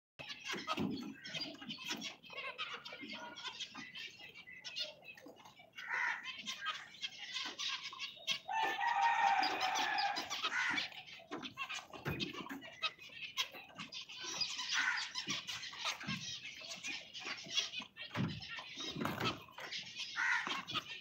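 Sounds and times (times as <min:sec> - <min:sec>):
finches chirping: 0:00.2 - 0:21.0
loud steady bird call: 0:05.8 - 0:06.9, 0:08.2 - 0:11.3, 0:14.7 - 0:15.2, 0:19.4 - 0:20.7.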